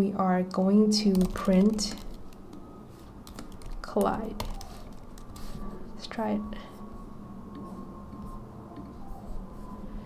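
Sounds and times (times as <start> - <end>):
light keyboard keystrokes: 1.0 - 5.6.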